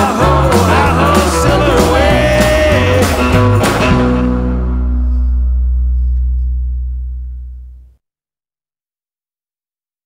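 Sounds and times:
rockabilly band final chord: 0.0s - 5.8s.

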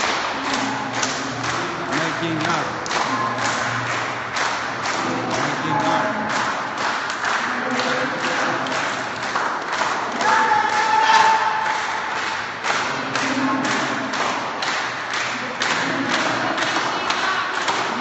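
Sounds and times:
audience thumping a rhythm: 0.0s - 18.0s
voices humming and singing: 0.0s - 18.0s.

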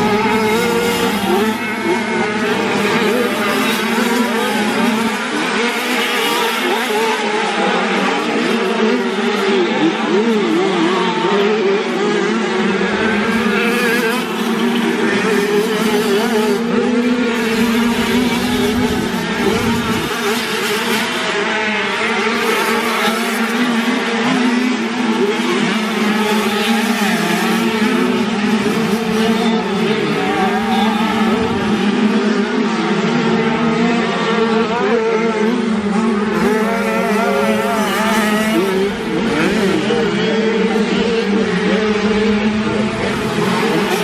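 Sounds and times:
motocross bikes racing: 0.0s - 44.0s.

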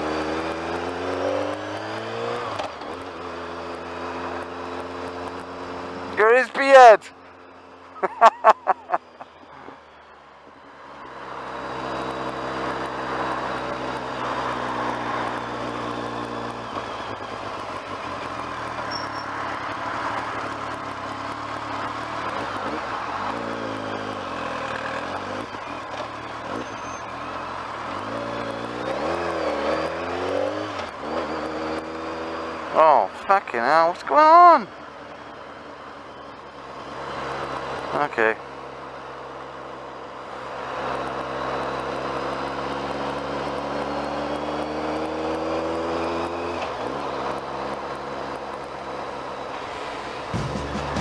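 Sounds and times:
wind and road rush: 0.0s - 51.0s
motorcycle engine running: 50.1s - 51.0s.

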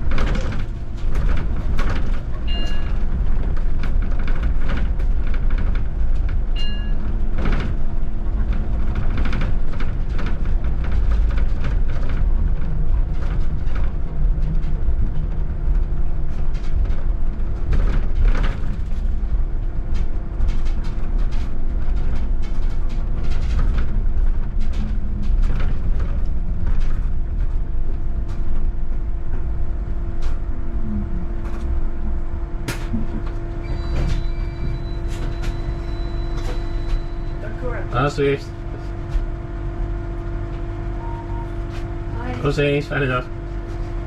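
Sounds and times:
rattles and knocks: 0.0s - 37.4s
bus engine rumble and hum: 0.0s - 44.0s
short electronic beeps: 33.6s - 37.4s, 41.0s - 41.6s.

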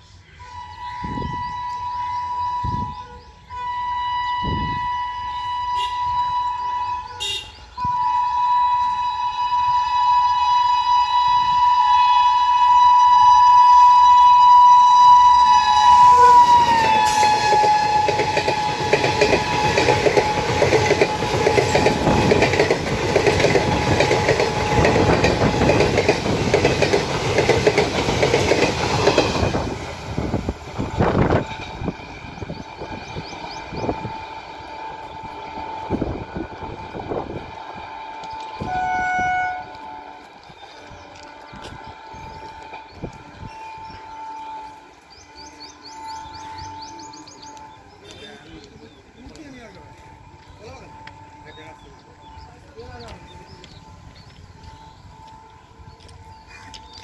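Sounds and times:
locomotive horn blasts: 0.4s - 26.4s, 28.9s - 33.0s, 33.7s - 52.0s, 53.2s - 57.0s
train wheels clattering on rails: 16.0s - 57.0s.

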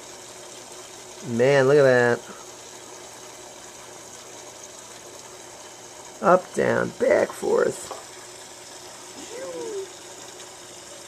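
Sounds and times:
aquarium filter running water: 0.0s - 11.0s.

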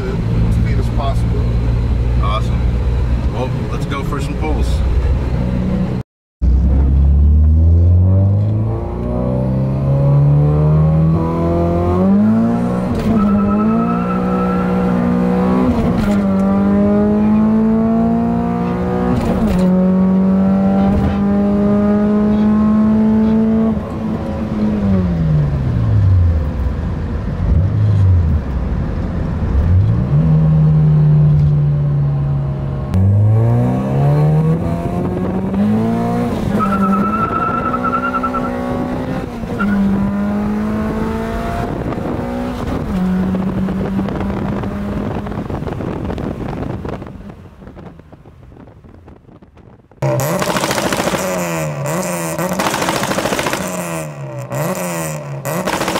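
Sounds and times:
car engine revving through gears: 5.1s - 26.6s, 29.5s - 47.1s, 50.0s - 55.9s.

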